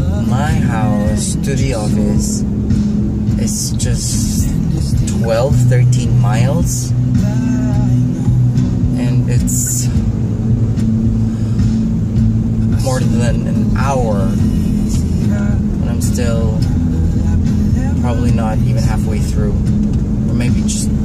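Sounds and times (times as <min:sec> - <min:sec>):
man singing along: 0:00.0 - 0:02.4, 0:03.3 - 0:10.0, 0:12.6 - 0:19.7
car engine and road rumble: 0:00.0 - 0:21.0
music: 0:00.0 - 0:21.0.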